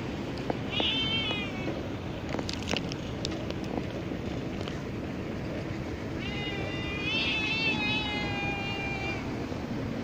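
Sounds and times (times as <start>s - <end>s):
cat meowing: 0.7s - 1.8s, 6.2s - 9.4s.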